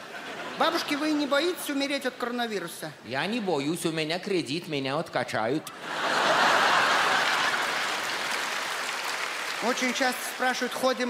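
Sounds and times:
audience applauding: 6.1s - 11.0s.

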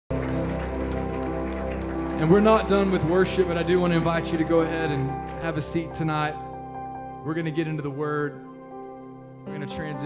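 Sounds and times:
scattered hand claps: 0.1s - 4.4s
band holding sustained chord: 0.1s - 10.0s.

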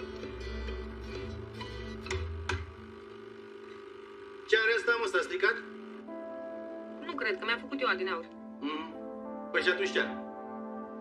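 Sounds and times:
plucked string music over bass: 0.0s - 2.9s.

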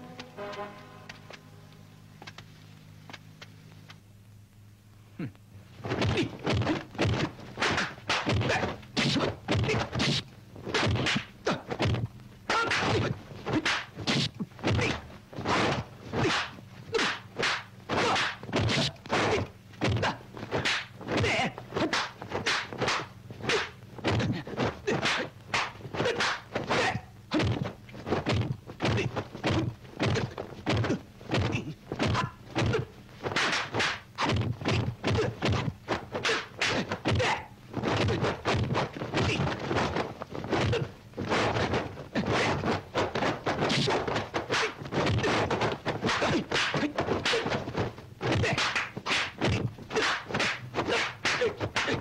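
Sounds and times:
punch and kick swishes: 5.8s - 52.0s.

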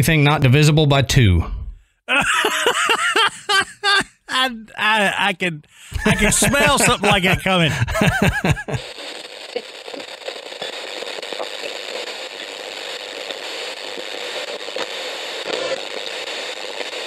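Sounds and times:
crackling static: 2.7s - 17.0s.

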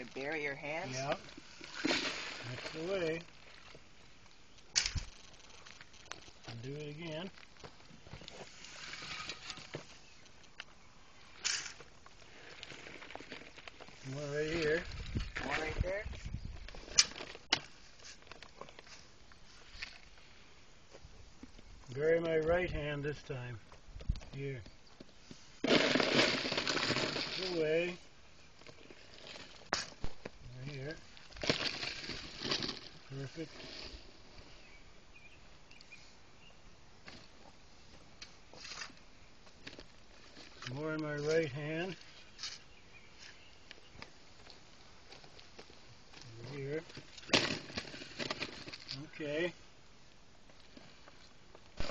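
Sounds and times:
soil scraping: 0.0s - 20.4s, 25.2s - 35.3s, 38.2s - 39.0s, 39.6s - 43.6s, 45.1s - 49.6s, 50.6s - 51.9s
dirt being shovelled: 0.8s - 3.7s, 8.2s - 10.1s, 25.4s - 28.0s
dirt dropping into a hole: 25.6s - 28.0s.

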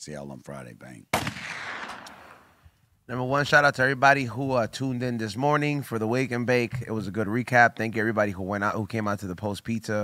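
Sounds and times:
gunshot with reverberating tail: 1.1s - 2.6s.

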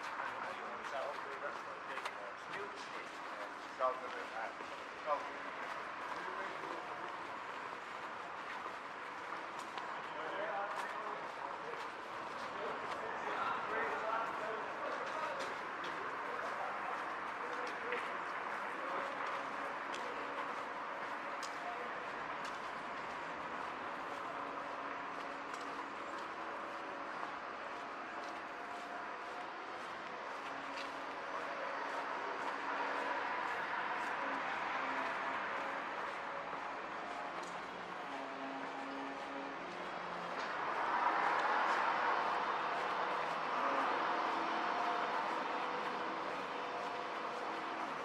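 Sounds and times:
faint indistinct voices: 0.0s - 48.0s.

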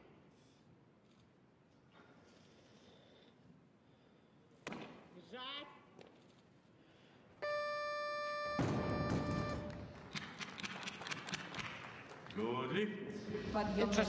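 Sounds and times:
steady beep: 7.4s - 9.9s
applause: 9.2s - 12.8s.

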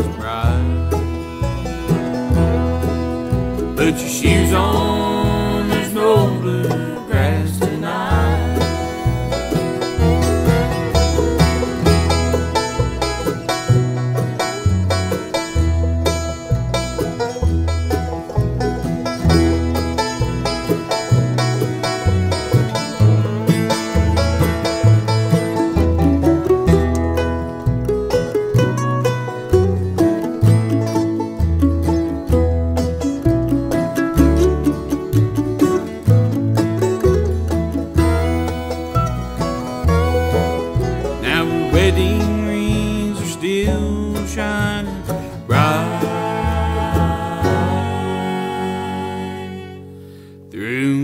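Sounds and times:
upright bass walking beat: 0.0s - 48.0s
banjo picking: 0.0s - 51.0s
strummed acoustic guitars: 0.0s - 51.0s.

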